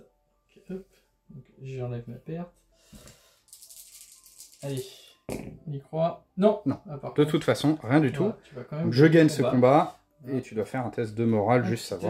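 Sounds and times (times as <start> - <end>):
dice rattling in a hand: 3.5 - 4.9.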